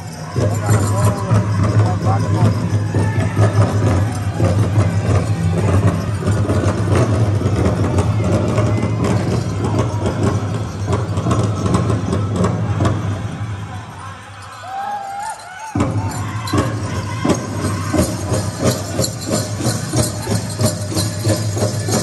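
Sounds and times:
singers chanting: 0.0 - 22.0
powwow drum: 0.1 - 13.1, 15.1 - 22.0.

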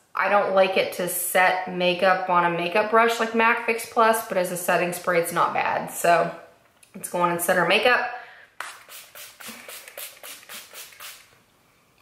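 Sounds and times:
pump-spray bottle hissing: 8.6 - 11.4.

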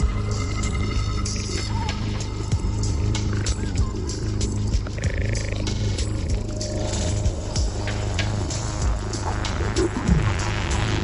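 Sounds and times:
electronic music with heavy bass: 0.0 - 11.0.

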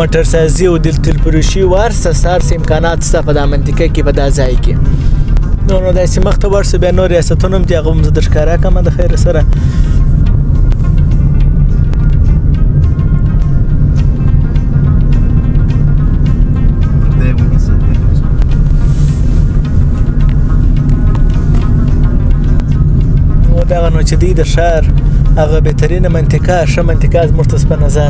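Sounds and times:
music with singing: 0.0 - 6.4, 7.0 - 28.0
car cabin rumble: 0.0 - 28.0.

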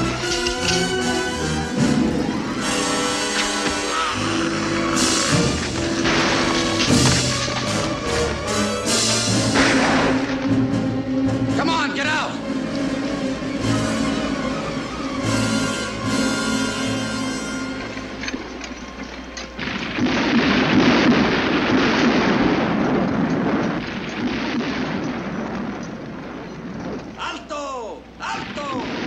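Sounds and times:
film score music: 0.0 - 29.0
thunder crash rumbling: 1.7 - 10.8, 19.6 - 27.2.

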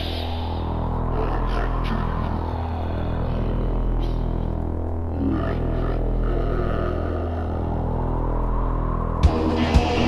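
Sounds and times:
heavy metal low chords drone: 0.0 - 10.0.

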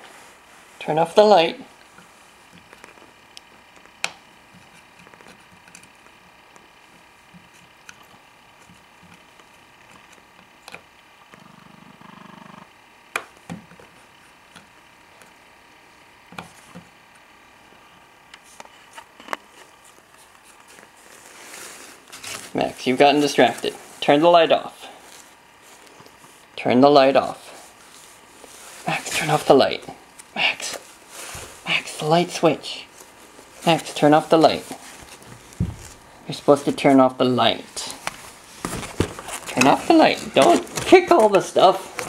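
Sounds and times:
short low hum: 11.2 - 12.9.

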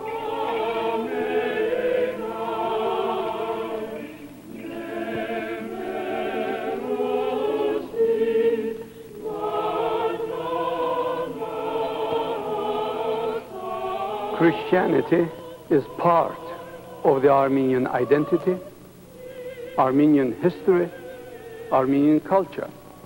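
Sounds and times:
church choir singing a hymn: 0.0 - 23.0.

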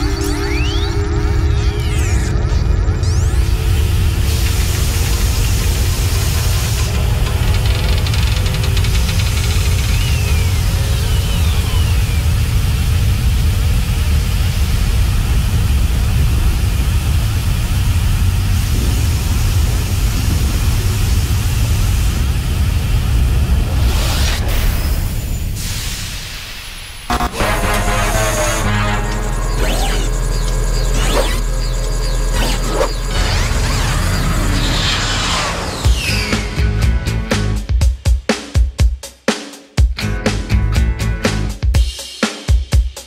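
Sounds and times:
deep rumble and hiss: 3.4 - 27.3
low drone rising in pitch: 27.1 - 37.2
film soundtrack music: 27.1 - 37.8.

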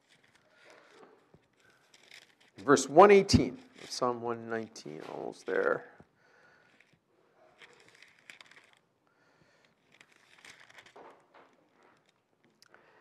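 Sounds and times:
pages turning: 0.0 - 6.0, 6.6 - 8.8, 9.5 - 12.2.

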